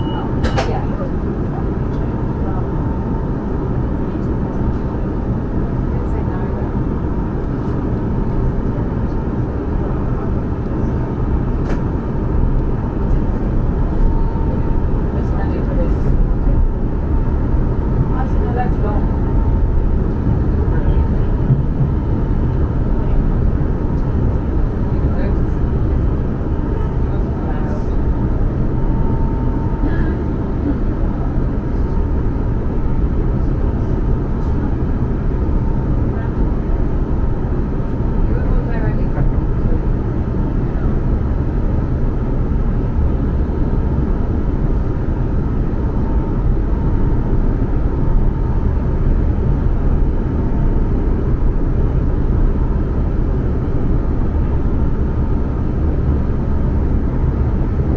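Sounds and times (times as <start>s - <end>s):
faint steady whine: 0.0s - 57.9s
train wheels rumbling on track: 0.0s - 57.9s.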